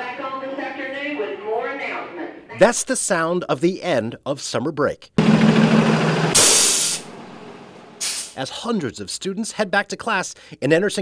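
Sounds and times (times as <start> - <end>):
diesel engine running: 5.2 - 8.0
air brake hiss: 6.4 - 7.1, 8.0 - 8.4.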